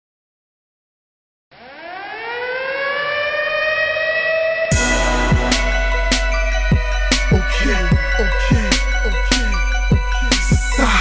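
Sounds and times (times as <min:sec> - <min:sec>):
air-raid siren wailing: 0:01.5 - 0:11.0.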